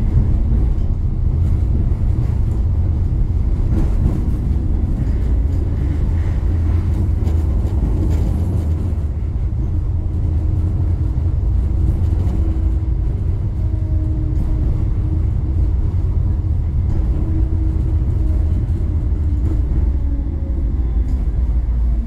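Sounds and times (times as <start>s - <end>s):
tram rumbling on track: 0.0s - 22.0s.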